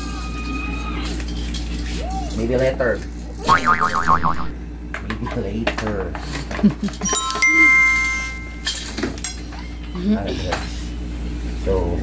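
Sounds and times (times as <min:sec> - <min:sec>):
cartoon boing sound effect: 0:03.5 - 0:04.6.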